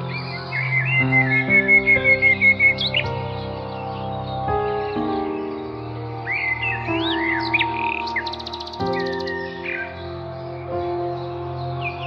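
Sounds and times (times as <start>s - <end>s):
bird trill: 0.0s - 12.0s
birds chirping: 0.0s - 12.0s
music with held chords: 0.0s - 12.0s.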